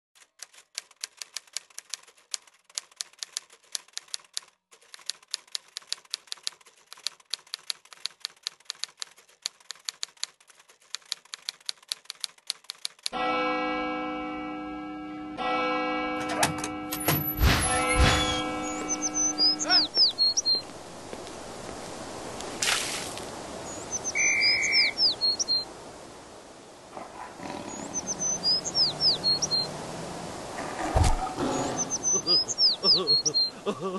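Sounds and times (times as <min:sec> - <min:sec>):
typewriter keys clacking: 0:00.2 - 0:13.2.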